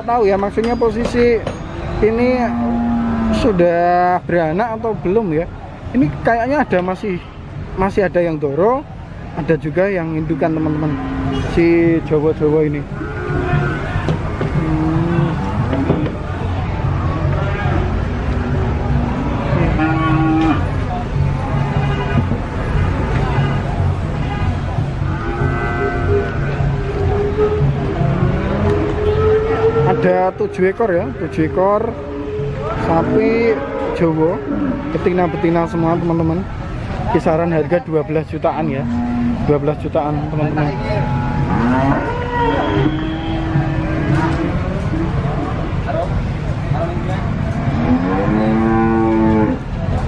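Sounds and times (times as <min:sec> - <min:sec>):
cow mooing: 0:02.3 - 0:03.6, 0:10.4 - 0:11.5, 0:14.5 - 0:16.2, 0:19.0 - 0:20.7, 0:25.2 - 0:26.4, 0:38.7 - 0:44.5, 0:47.6 - 0:49.6.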